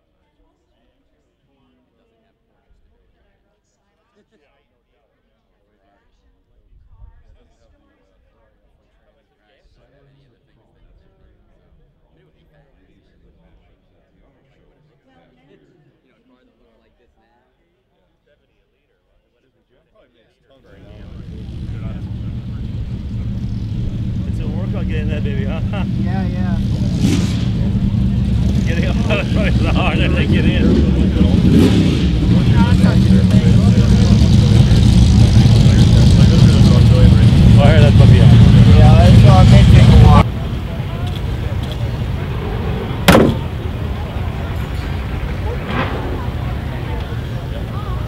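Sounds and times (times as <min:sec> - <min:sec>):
engine droning: 0:20.7 - 0:48.0
steady low rumble: 0:20.7 - 0:48.0
car door slamming: 0:43.0 - 0:43.8.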